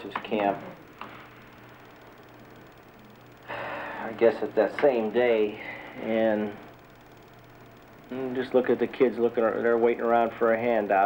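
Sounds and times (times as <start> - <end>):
faint steady hiss: 0.0 - 11.0
low hum: 0.0 - 11.0.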